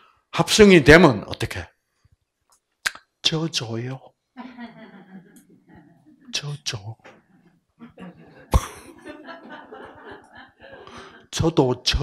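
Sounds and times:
person coughing into microphone: 8.5s - 9.0s.

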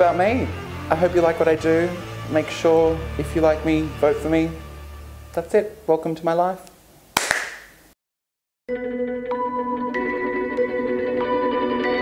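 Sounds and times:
hand claps: 7.2s - 7.8s
ambient music with echoing guitar: 8.7s - 12.0s.

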